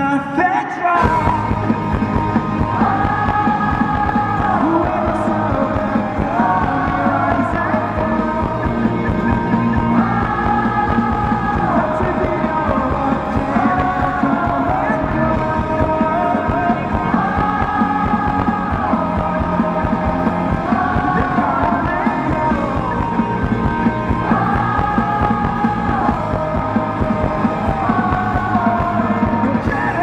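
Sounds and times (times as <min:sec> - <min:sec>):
drums: 0:00.0 - 0:30.0
electric guitars: 0:01.0 - 0:30.0.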